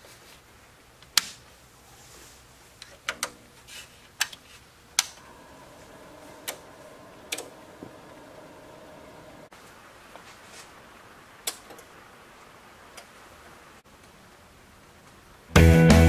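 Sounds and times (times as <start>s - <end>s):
faint steady hum: 0.0s - 15.6s
clicks of switches and controls: 5.0s - 5.2s, 6.4s - 6.7s.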